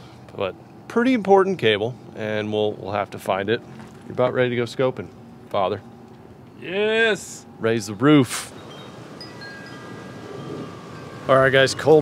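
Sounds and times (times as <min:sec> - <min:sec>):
hiss of outdoor air: 0:08.2 - 0:12.0
wind chimes ringing: 0:08.5 - 0:12.0.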